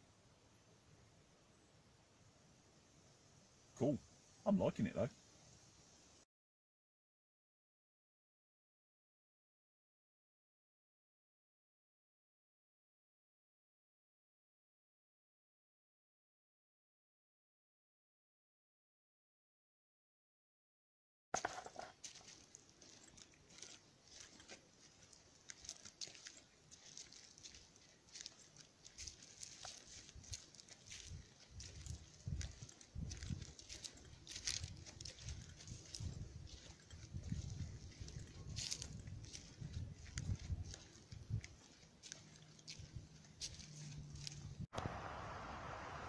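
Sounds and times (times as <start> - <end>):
footsteps crunching on dry path: 21.4 - 44.7
leaves and twigs crackling underfoot: 21.4 - 45.3.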